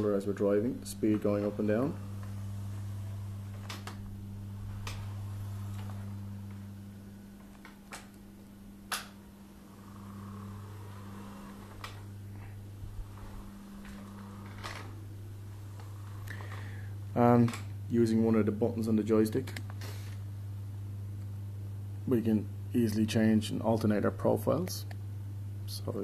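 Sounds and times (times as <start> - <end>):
wheelchair electric motors humming: 0.0 - 26.0.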